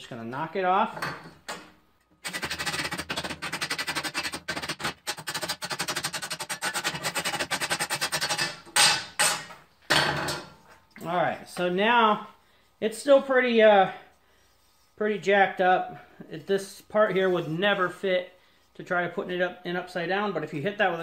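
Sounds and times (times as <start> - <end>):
metal-on-metal banging: 8.1 - 10.6.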